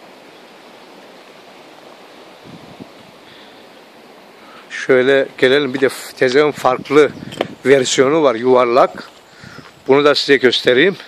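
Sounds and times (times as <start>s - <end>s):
stream rushing: 0.0s - 11.0s.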